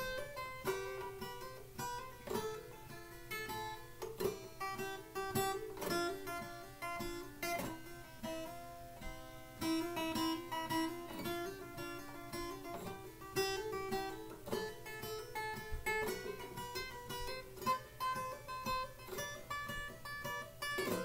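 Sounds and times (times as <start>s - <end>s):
acoustic guitar hammer-ons: 0.0s - 21.0s.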